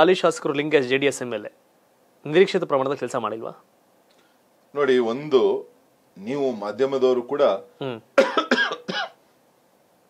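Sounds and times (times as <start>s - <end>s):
man speaking: 4.7s - 8.2s
short coughs: 8.2s - 9.2s.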